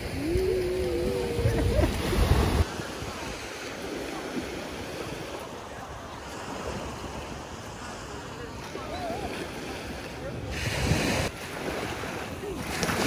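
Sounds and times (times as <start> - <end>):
wind rumbling on microphone: 0.0 - 3.5
small waves washing onto beach: 0.0 - 13.0.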